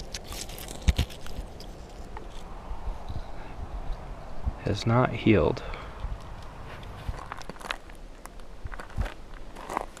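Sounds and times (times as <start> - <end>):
outdoor ambience hiss: 0.0 - 10.0.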